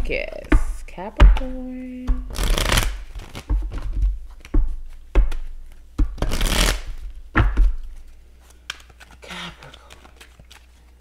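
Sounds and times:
card deck thumps: 0:00.3 - 0:09.0
cards riffling: 0:02.3 - 0:04.5, 0:05.3 - 0:07.1, 0:07.8 - 0:11.0.

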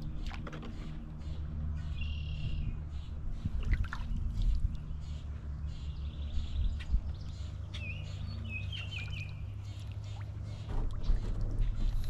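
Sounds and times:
birds chirping: 0:00.0 - 0:12.0
steady low rumble: 0:00.0 - 0:12.0.

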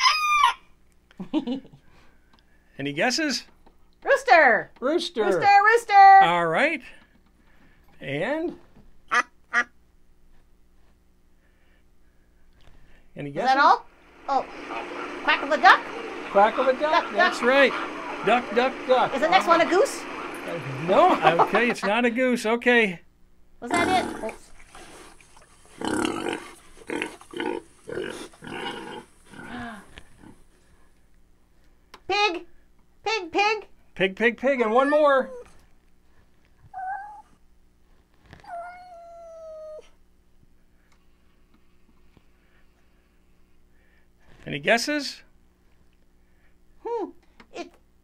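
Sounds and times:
duck quacking: 0:09.1 - 0:09.8
pig grunting and oinking: 0:23.7 - 0:24.5, 0:25.7 - 0:30.4.

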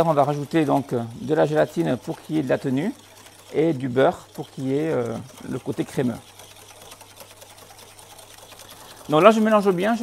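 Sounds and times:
whisk beating eggs in glass bowl: 0:00.0 - 0:10.0.

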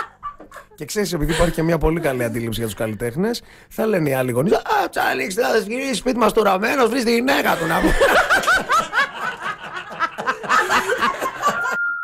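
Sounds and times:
man and woman laughing: 0:00.0 - 0:02.9, 0:07.5 - 0:11.8.

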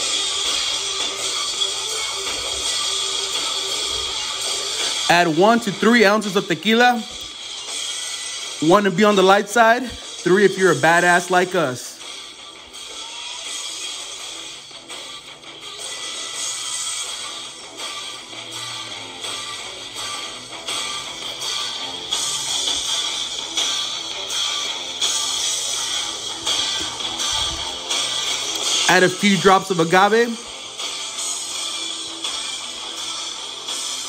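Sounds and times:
guitar background music: 0:00.0 - 0:34.0.

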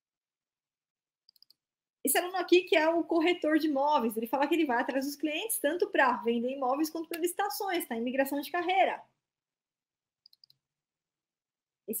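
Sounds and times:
computer mouse clicks: 0:01.2 - 0:01.6, 0:10.2 - 0:10.7.

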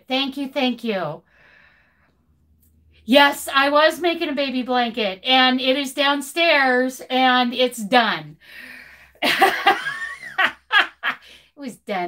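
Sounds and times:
woman laughing heartily: 0:09.2 - 0:11.4.

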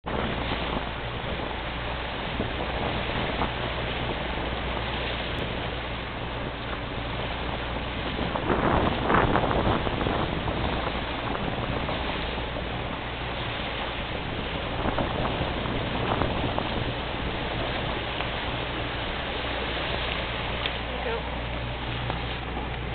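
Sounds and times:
boat engine humming: 0:00.0 - 0:22.9
rushing water: 0:00.0 - 0:22.9.

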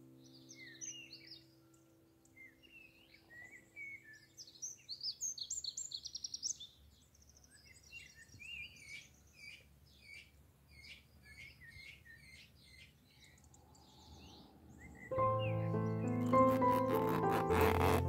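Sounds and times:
songbirds singing and chirping: 0:00.0 - 0:18.0.

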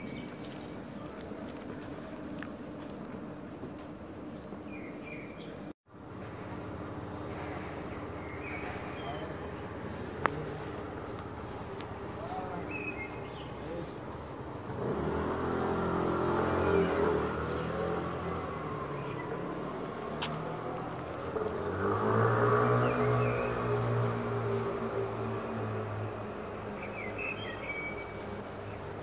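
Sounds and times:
motor vehicles passing: 0:05.9 - 0:29.0.

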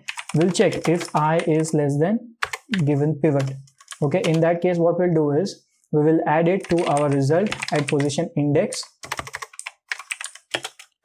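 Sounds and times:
computer keyboard typing: 0:00.0 - 0:01.7, 0:02.4 - 0:04.4, 0:06.6 - 0:08.2, 0:08.8 - 0:11.0.

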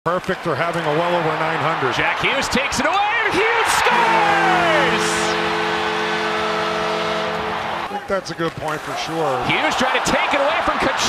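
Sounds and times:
crowd cheering: 0:00.2 - 0:11.0
goal horn blowing: 0:02.0 - 0:08.1.

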